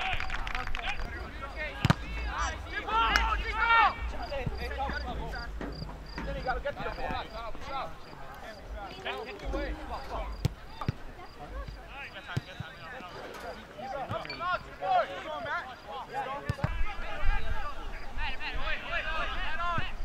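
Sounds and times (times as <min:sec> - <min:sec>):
players calling and shouting: 0:00.0 - 0:20.0
soccer ball kicked thuds: 0:01.7 - 0:02.4.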